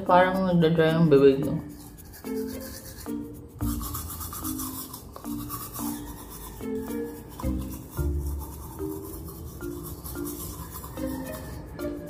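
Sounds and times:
background music with repeating melody: 0:00.0 - 0:12.0
toothbrush scrubbing teeth: 0:00.0 - 0:12.0.

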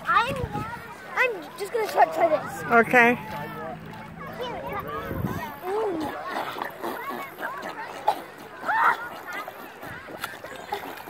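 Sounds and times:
wordless rising and falling voices: 0:01.6 - 0:06.0.

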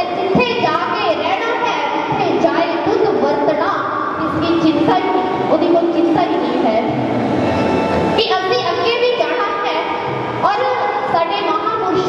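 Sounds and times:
woman speaking over loudspeaker: 0:00.0 - 0:07.0, 0:08.2 - 0:12.0.

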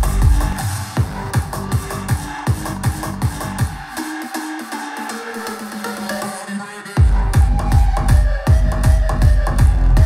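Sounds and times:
deep kick drum: 0:00.0 - 0:03.8, 0:07.0 - 0:10.0
electronic dance music: 0:00.0 - 0:10.0.

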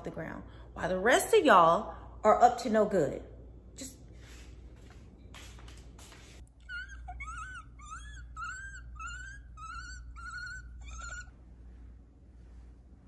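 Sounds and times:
small pet squeaking: 0:06.6 - 0:11.4.

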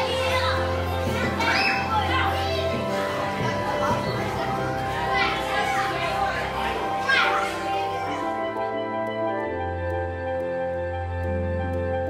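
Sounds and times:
children calling out: 0:00.0 - 0:08.5
background music: 0:00.0 - 0:12.0.

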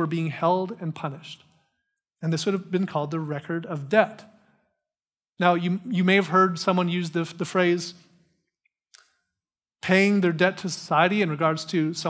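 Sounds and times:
man speaking: 0:00.0 - 0:01.4, 0:02.2 - 0:04.4, 0:05.4 - 0:08.0, 0:09.8 - 0:12.0.

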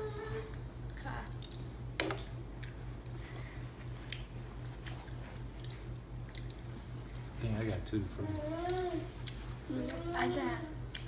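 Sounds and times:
people chewing: 0:00.3 - 0:07.4, 0:08.5 - 0:11.0.

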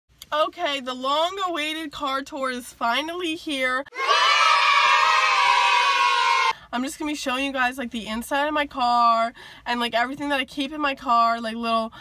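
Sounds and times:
children cheering: 0:03.9 - 0:06.5.

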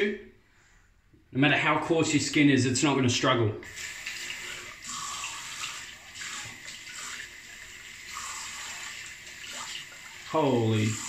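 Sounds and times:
tap water running into sink: 0:03.6 - 0:11.0
water splashing: 0:03.7 - 0:11.0.

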